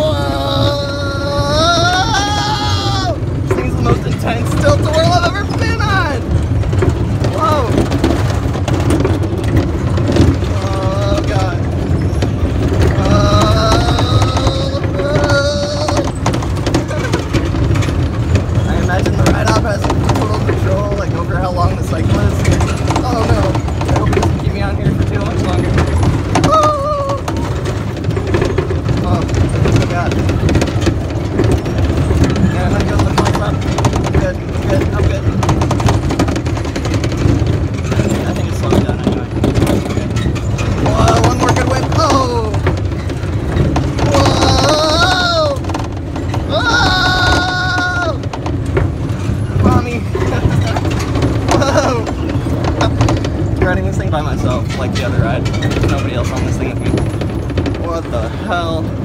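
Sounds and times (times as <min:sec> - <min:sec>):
people shouting: 0:00.0 - 0:03.4, 0:12.9 - 0:16.2, 0:44.0 - 0:45.7, 0:46.4 - 0:48.3
ride low rumble: 0:00.0 - 0:59.0.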